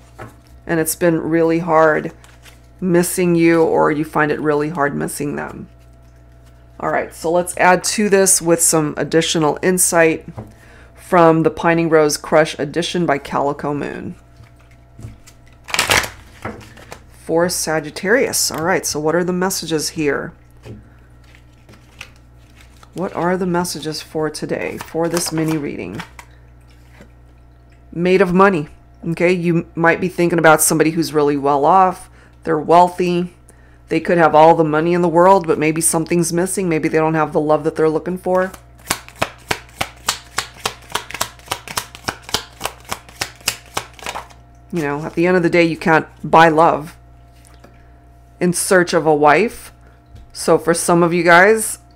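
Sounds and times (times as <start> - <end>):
cards riffling: 2.2 - 2.7, 14.4 - 17.1, 21.2 - 23.2, 38.8 - 44.4.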